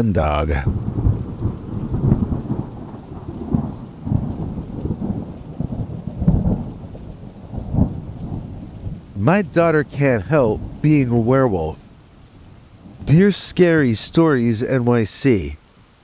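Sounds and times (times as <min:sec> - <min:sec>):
rumbling thunder: 0:00.0 - 0:14.2
steady rain: 0:00.0 - 0:16.0.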